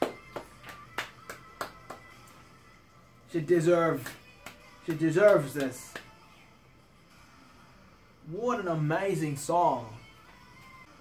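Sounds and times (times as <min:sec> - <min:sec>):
person clapping hands: 0:00.0 - 0:02.3, 0:04.0 - 0:06.2.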